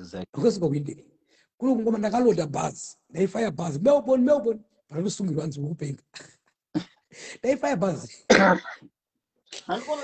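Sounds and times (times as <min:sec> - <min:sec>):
man coughing: 0:08.2 - 0:08.9.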